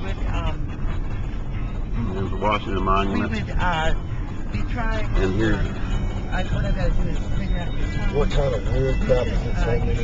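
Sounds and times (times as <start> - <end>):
car engine rumble: 0.0 - 10.0
tyres on the road: 0.0 - 10.0.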